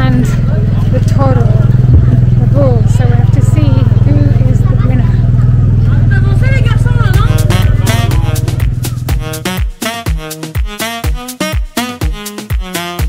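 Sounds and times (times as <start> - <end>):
crowd chatter: 0.0 - 9.6
engine idling: 0.0 - 9.6
music with a beat: 6.9 - 13.0.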